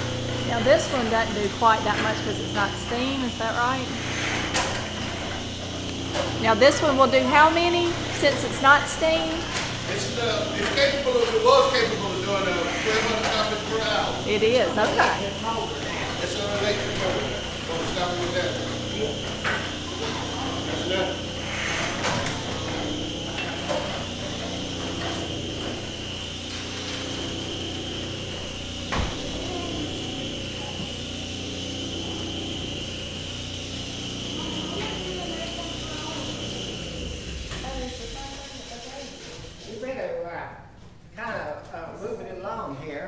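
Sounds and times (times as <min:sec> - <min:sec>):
printing press rattle and hum: 0:00.0 - 0:40.2.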